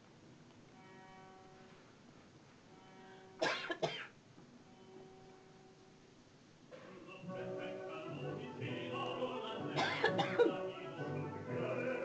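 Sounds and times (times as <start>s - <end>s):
person coughing: 3.4s - 4.2s, 9.8s - 10.6s.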